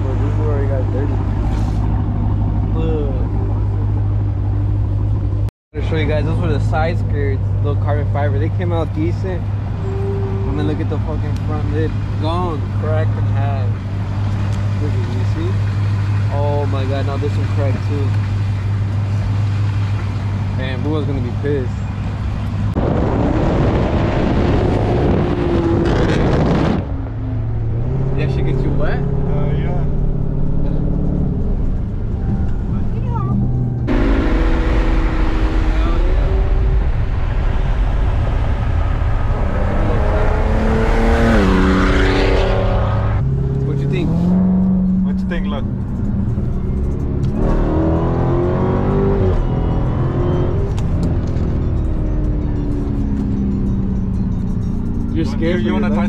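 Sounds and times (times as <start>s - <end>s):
car engine and road noise: 0.0s - 56.0s
engine revving: 5.8s - 56.0s.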